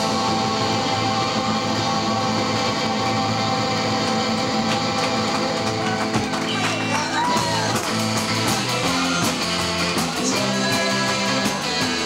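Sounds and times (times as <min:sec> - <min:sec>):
live rock band with electric guitar: 0:00.0 - 0:12.0.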